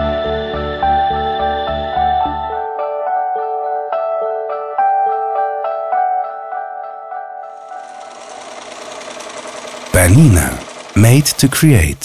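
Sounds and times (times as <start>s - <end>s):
sewing machine running: 7.5s - 12.0s.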